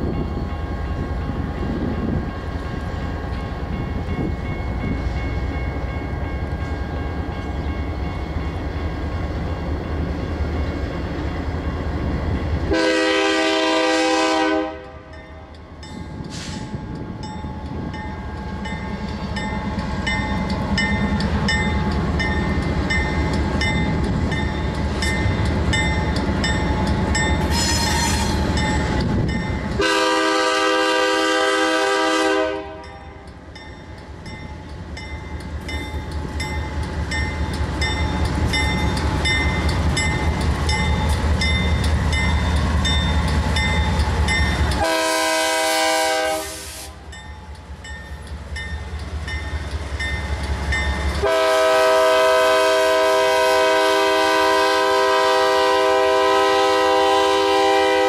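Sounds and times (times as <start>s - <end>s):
locomotive air horn blasts: 12.7s - 15.1s, 27.5s - 28.4s, 29.8s - 32.9s, 44.8s - 47.0s, 51.2s - 58.0s
locomotive engine rumble: 15.3s - 55.6s.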